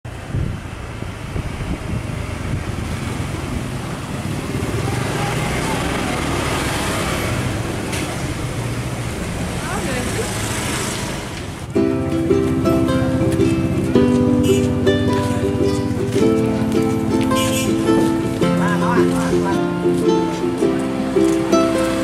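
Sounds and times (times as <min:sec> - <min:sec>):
street traffic noise: 0:00.0 - 0:22.0
motorcycle engines passing: 0:00.1 - 0:22.0
indistinct voices: 0:12.5 - 0:22.0.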